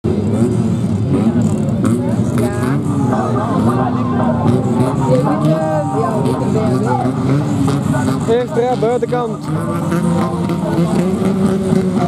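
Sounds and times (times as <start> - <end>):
car engines idling and revving: 0.0 - 12.0
voices: 1.2 - 12.0.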